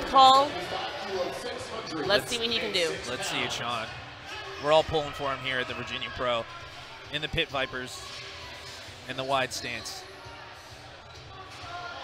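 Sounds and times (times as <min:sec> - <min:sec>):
background music: 0:00.0 - 0:12.0
faint crowd murmur: 0:00.0 - 0:12.0.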